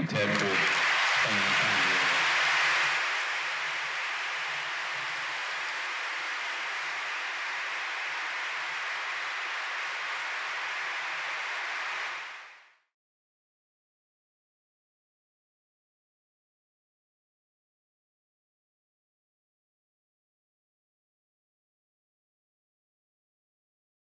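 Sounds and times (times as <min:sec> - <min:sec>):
audience applauding: 0:00.0 - 0:12.8.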